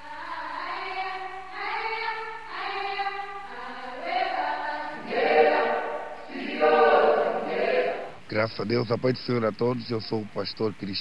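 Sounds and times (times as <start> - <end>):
choir singing: 0.0 - 8.3.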